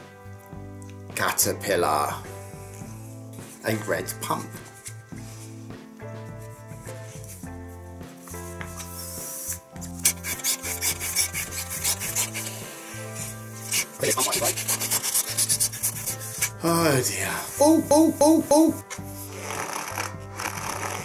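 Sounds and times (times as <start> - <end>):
background music held notes: 0.0 - 21.0
balloon pump rasping: 8.6 - 16.6, 18.8 - 21.0.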